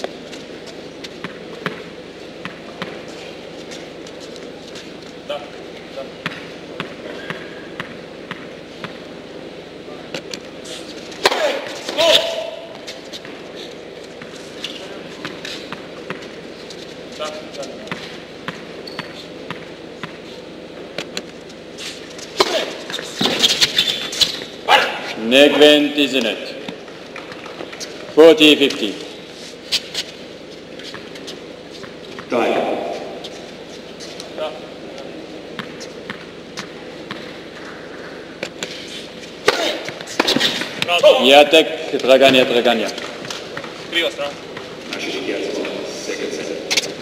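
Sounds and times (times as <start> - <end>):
voices: 39.4 - 47.0.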